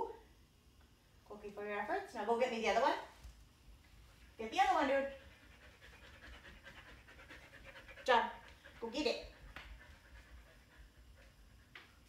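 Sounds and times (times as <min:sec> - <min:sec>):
dog panting: 0:04.7 - 0:12.0.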